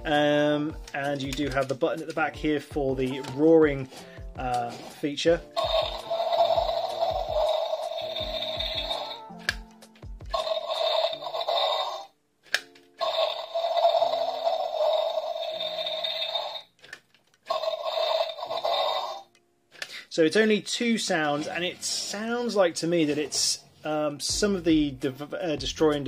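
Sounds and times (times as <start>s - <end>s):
toy speaker dinosaur roars: 5.6s - 9.2s, 10.3s - 12.1s, 13.0s - 16.7s, 17.5s - 19.3s.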